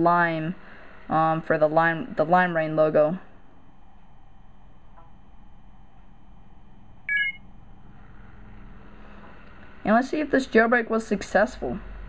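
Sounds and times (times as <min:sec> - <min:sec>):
low hum: 0:00.0 - 0:12.0
short electronic beep: 0:07.1 - 0:07.4.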